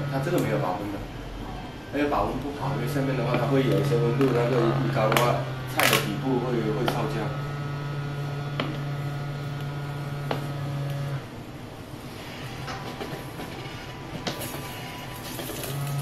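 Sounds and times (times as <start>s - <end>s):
cooking machine motor hum: 0.0s - 16.0s.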